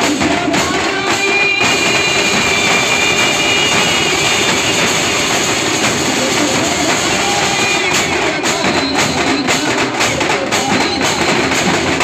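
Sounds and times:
bass drums: 0.0s - 12.0s
snare drums: 0.0s - 12.0s
hand cymbals crashing: 1.0s - 9.9s.

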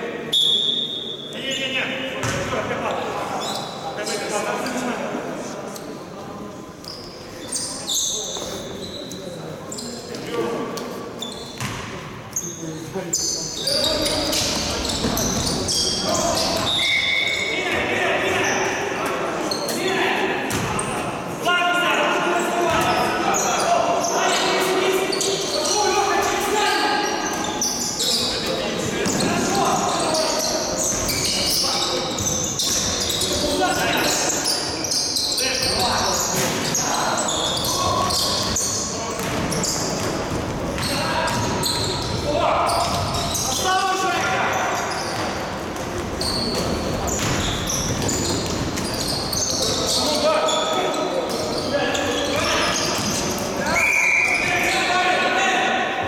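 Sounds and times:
basketball bouncing on court: 2.2s - 2.5s, 11.6s - 11.9s, 39.2s - 43.4s, 45.0s - 49.2s.

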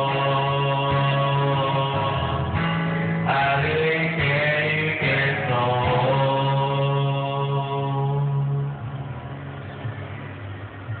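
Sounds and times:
karaoke music with held note: 0.0s - 11.0s.

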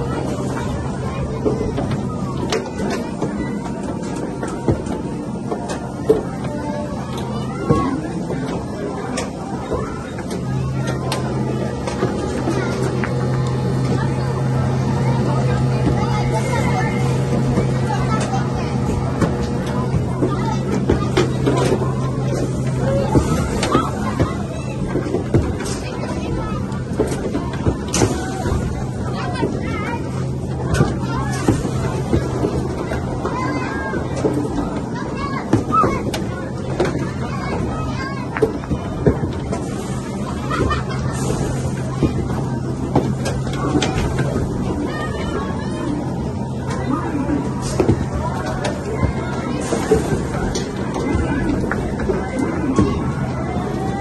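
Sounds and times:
arcade game room din: 0.0s - 54.0s
people chattering: 0.0s - 54.0s
steady low hum: 0.0s - 54.0s.

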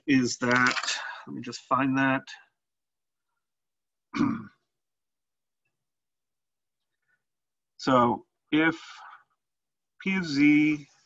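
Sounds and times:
man clearing throat: 4.1s - 4.6s.

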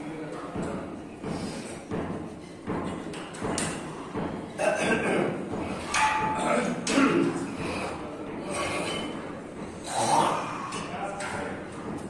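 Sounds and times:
gym background noise: 0.0s - 12.0s
dull thuds and knocks: 0.5s - 4.5s.

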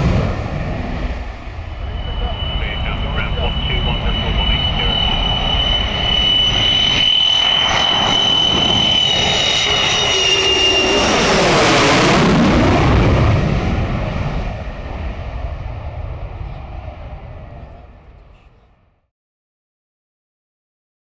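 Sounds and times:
jet rushing overhead: 0.0s - 18.8s
jet engine whistling whine: 0.0s - 18.9s.

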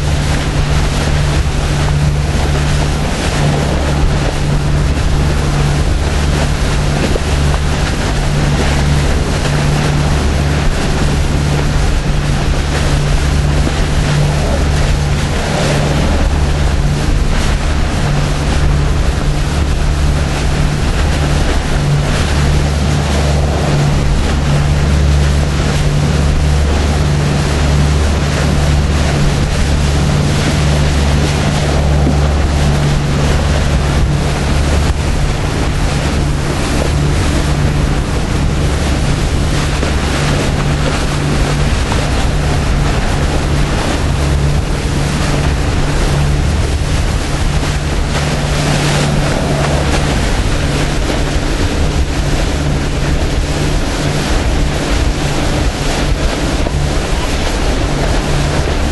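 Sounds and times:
boat engines droning: 0.0s - 58.9s
wake churning: 0.0s - 58.9s
wind buffeting microphone: 0.0s - 58.9s.

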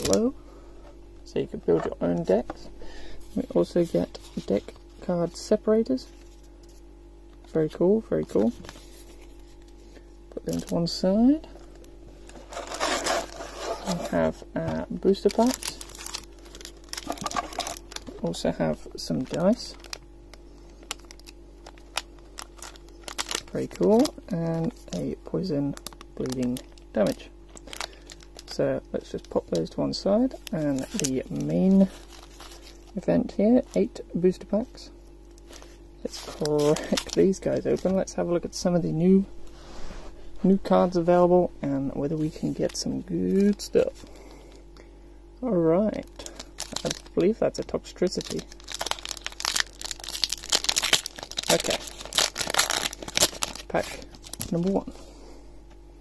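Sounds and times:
plastic bag crinkling: 10.4s - 34.0s, 35.3s - 38.2s, 42.0s - 44.5s, 46.0s - 55.0s.

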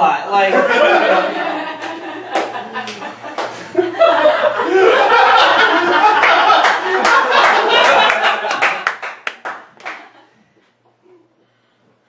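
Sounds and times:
laughter: 0.5s - 9.0s
audience clapping: 1.5s - 3.8s, 5.0s - 10.3s.

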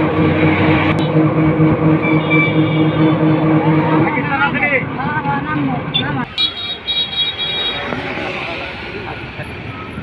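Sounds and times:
highway traffic: 0.0s - 10.0s.

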